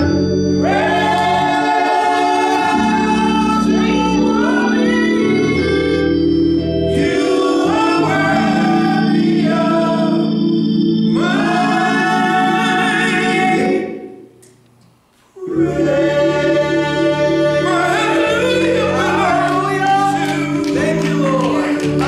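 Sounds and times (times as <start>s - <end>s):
group singing worship song: 0.0s - 14.3s, 15.4s - 22.0s
held accompaniment chords: 0.0s - 22.0s.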